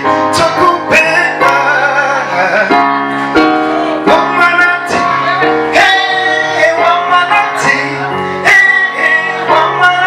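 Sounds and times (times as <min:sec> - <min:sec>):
electronic keyboard music: 0:00.0 - 0:10.0.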